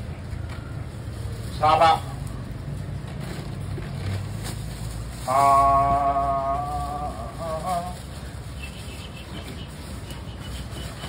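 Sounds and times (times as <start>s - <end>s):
market background: 0.0s - 11.0s.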